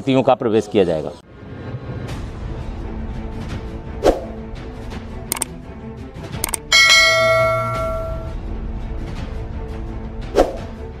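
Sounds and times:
quick clicks: 0:05.3 - 0:05.5, 0:06.4 - 0:06.7
bright bell chime: 0:06.7 - 0:08.4.

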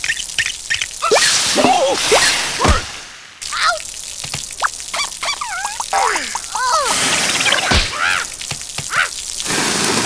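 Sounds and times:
cartoon water spray hissing: 0:00.0 - 0:10.0
cartoon squealing cries: 0:01.0 - 0:02.0, 0:04.9 - 0:09.3.

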